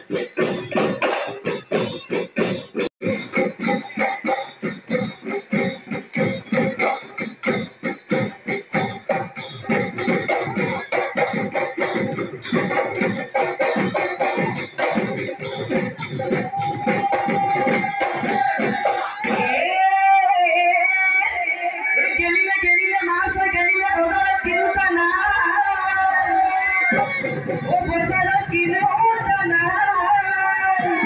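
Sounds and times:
folk music with drums: 0:00.0 - 0:19.9, 0:21.9 - 0:31.0
drums beating fast rhythm: 0:00.0 - 0:31.0.

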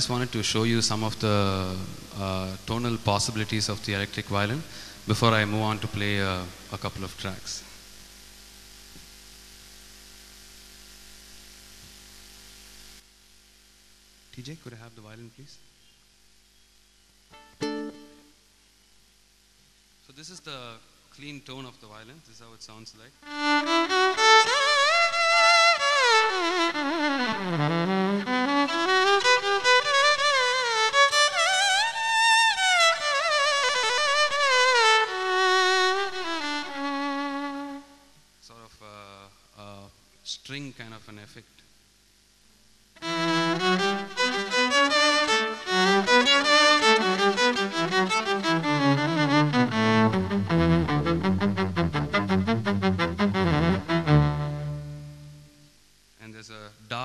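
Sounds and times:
electric violin melody: 0:00.0 - 0:03.6, 0:17.4 - 0:18.3, 0:23.2 - 0:38.0, 0:43.0 - 0:55.6.

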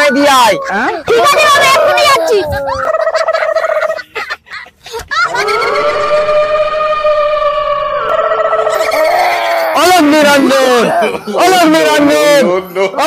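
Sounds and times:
person wailing cry: 0:00.0 - 0:03.4, 0:08.6 - 0:13.0.

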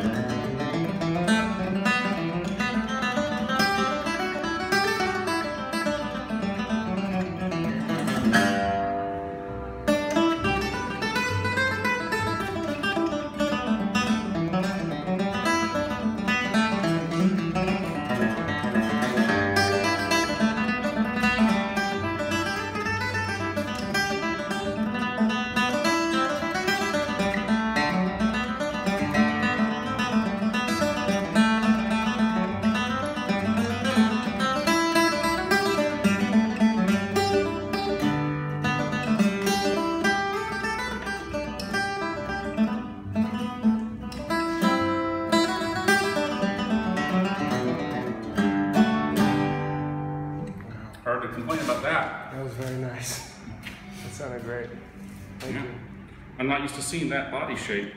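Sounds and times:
tenor guitar picking and strumming: 0:00.0 - 0:57.9.

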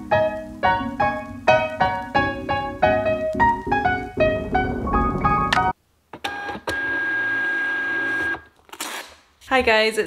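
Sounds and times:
knock: 0:03.0 - 0:05.7.

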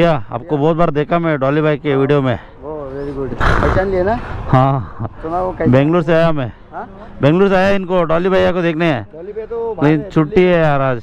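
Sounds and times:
men talking: 0:00.0 - 0:11.0
rough rush of noise: 0:02.8 - 0:06.5.

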